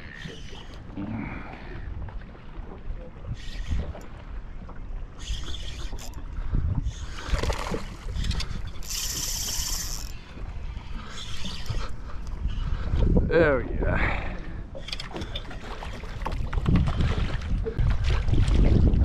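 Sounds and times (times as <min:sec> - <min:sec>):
fishing reel spinning: 0:03.4 - 0:04.0, 0:05.2 - 0:06.2, 0:06.9 - 0:12.0
wind rumble on microphone: 0:05.2 - 0:19.0.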